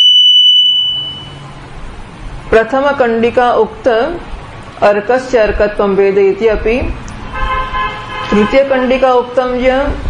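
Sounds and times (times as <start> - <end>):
high-pitched electronic beep: 0.0 - 1.5.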